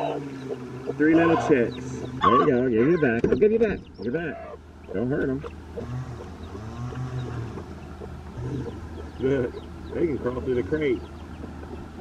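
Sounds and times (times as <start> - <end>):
hen clucking: 0.0 - 12.0.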